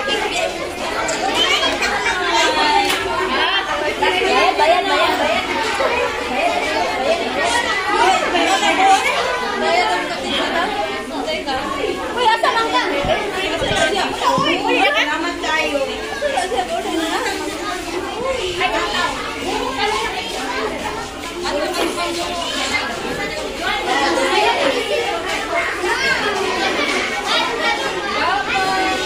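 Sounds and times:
babble of chatter: 0.0 - 29.0.

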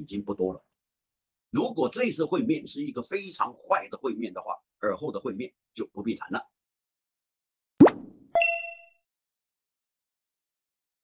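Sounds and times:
rising plop: 7.8 - 8.4
bright ding: 8.4 - 9.0.

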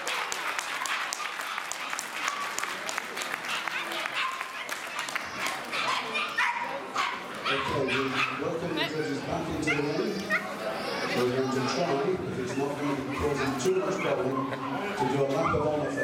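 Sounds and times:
audience clapping: 0.0 - 6.0
dogs barking: 3.3 - 10.6, 12.6 - 15.7.

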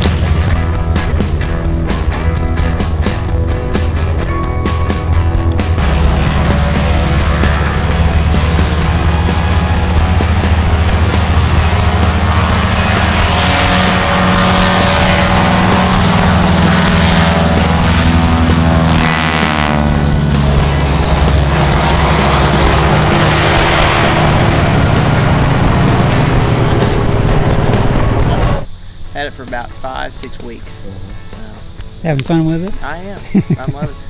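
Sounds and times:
biplane engine passing by: 0.0 - 32.1
loud rock music: 0.0 - 34.0.

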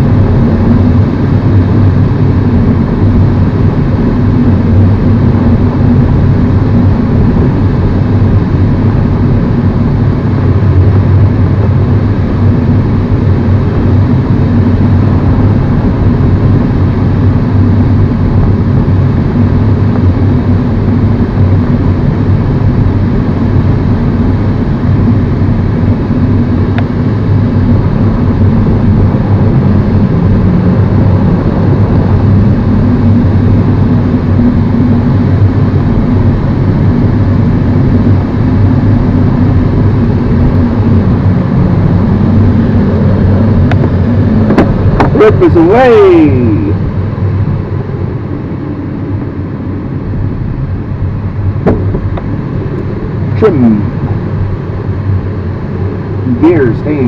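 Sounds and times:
air rushing around canopy: 0.0 - 57.0
tow plane engine drone: 0.0 - 57.0.

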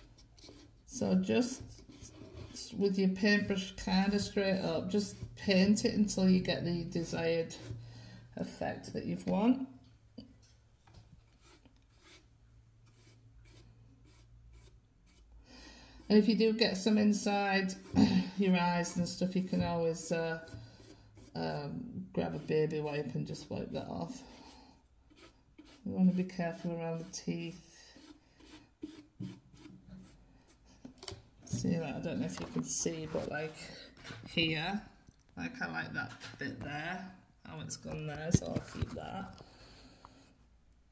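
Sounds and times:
paintbrush scratching on wood: 11.3 - 12.3, 12.9 - 15.3, 19.7 - 30.7.

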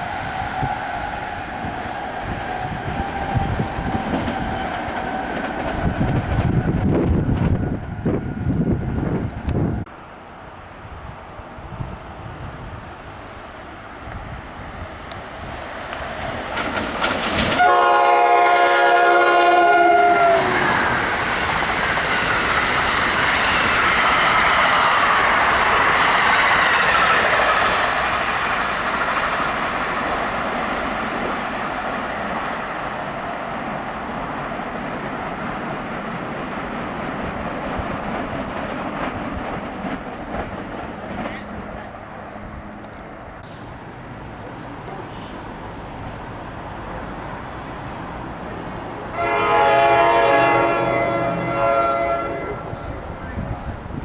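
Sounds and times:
train wheels on track rushing: 0.0 - 54.0
train multi-chime horn: 17.6 - 20.6, 49.1 - 52.7.

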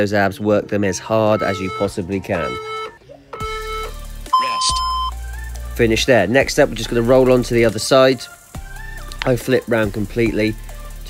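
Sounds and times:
background music: 0.0 - 11.0
long electronic timer beep: 1.4 - 5.2.

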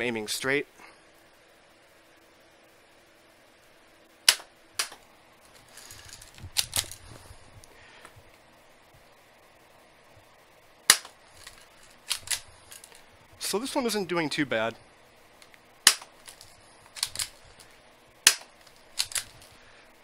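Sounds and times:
airsoft pistol shots: 4.3 - 5.0, 10.9 - 11.2, 15.8 - 16.1, 18.2 - 18.5
clicks and handling noise: 4.3 - 8.4, 10.9 - 13.1, 15.4 - 19.6.

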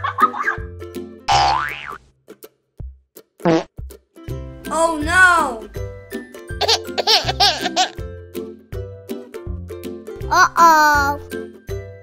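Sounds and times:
children's background music: 0.0 - 1.4, 2.3 - 12.0
cartoon boing sound effect: 1.3 - 2.0.

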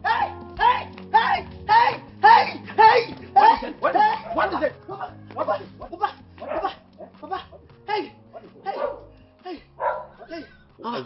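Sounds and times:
dog barking: 6.4 - 7.2, 8.3 - 9.2, 9.8 - 10.3.

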